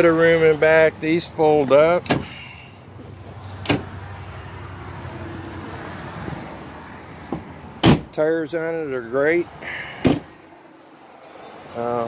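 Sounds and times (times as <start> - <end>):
car door slamming: 2.0 - 2.4, 3.6 - 4.0, 7.2 - 8.2, 10.0 - 10.4
seat clicking as folded: 3.5 - 3.8.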